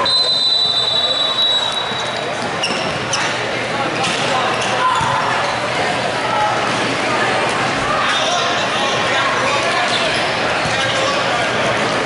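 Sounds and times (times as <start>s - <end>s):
referee's whistle blast: 0.0s - 2.1s
voices echoing in hall: 0.0s - 12.0s
shoes squeaking on hardwood court: 1.7s - 3.4s.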